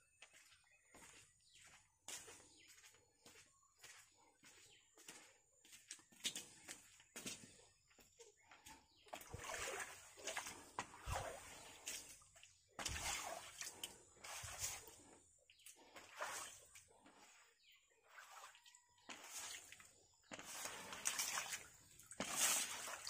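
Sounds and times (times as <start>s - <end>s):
squeegee scraping water on concrete: 9.2s - 23.0s.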